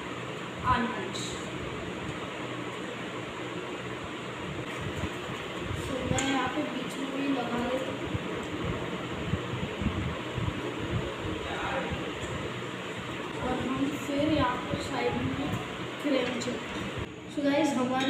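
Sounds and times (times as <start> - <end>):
background hiss and hum: 0.0 - 18.0.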